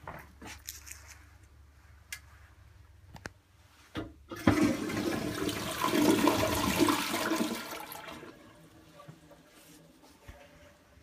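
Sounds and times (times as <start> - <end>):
toilet flushing water rush: 4.3 - 8.8.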